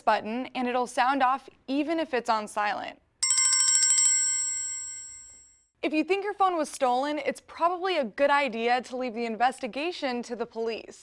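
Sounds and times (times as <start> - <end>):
smartphone bell-like ringtone: 3.2 - 5.7.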